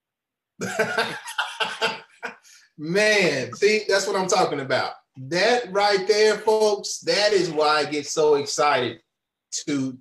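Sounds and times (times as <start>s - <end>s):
man laughing: 0.6s - 2.2s.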